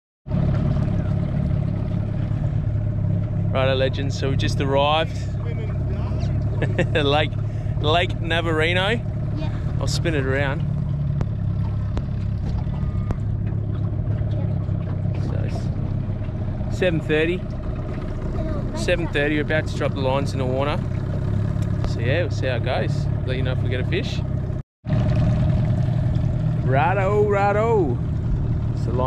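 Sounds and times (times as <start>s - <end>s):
outboard motor running: 0.3s - 29.0s.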